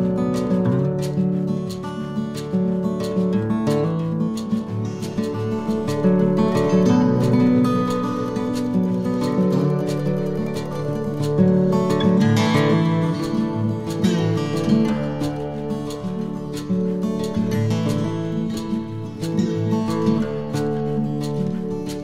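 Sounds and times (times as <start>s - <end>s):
plucked acoustic guitar music: 0.0s - 22.0s.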